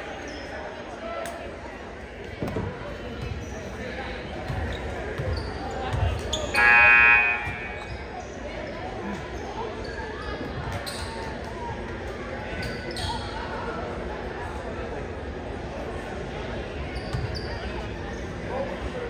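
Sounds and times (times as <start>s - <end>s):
background chatter: 0.0s - 19.0s
loud steady pitched tone: 6.6s - 7.9s.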